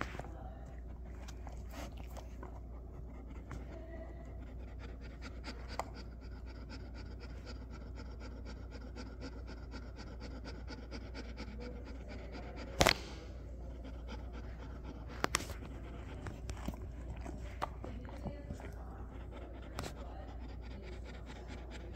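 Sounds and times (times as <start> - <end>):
dog panting: 0.0 - 21.9.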